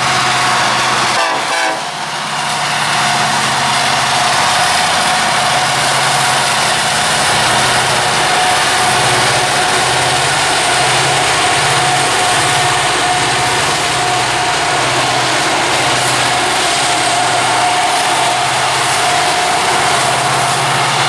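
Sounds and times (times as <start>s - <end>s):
diesel locomotive engines droning: 0.0s - 21.0s.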